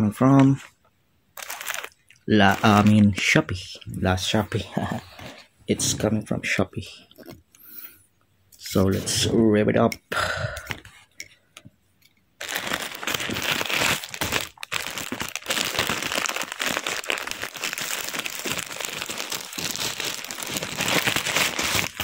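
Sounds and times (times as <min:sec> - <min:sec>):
plastic mailer tearing and crinkling: 0:01.4 - 0:03.4, 0:12.4 - 0:22.0.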